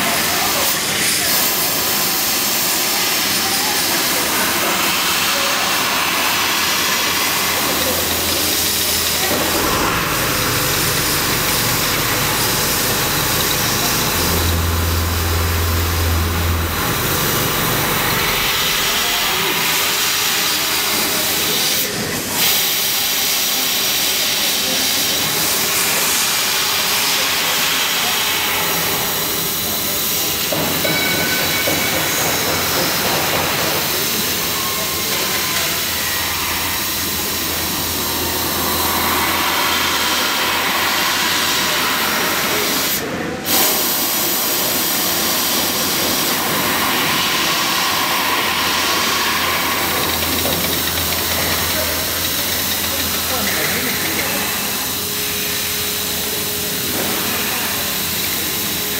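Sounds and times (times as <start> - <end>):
hiss of assist gas: 37.2 - 50.4.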